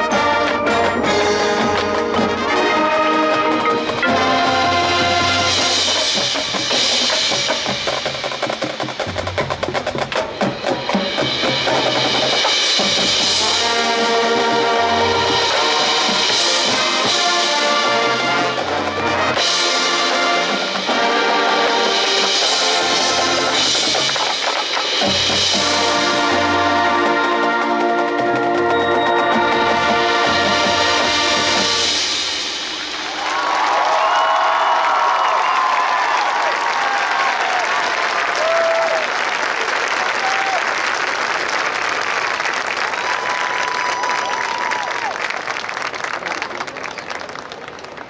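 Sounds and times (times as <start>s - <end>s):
marching band playing: 0.0s - 48.0s
fast snare drumming: 0.3s - 37.4s.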